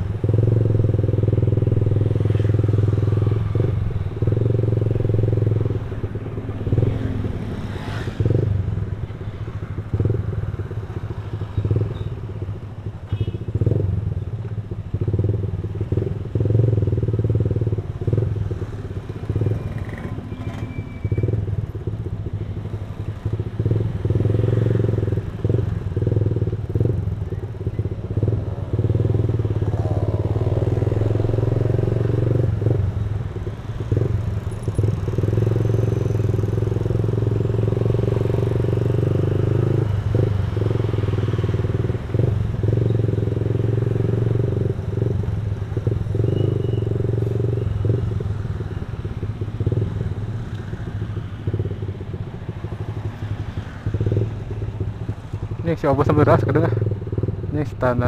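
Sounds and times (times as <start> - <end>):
scooter engine running: 15.9 - 44.3.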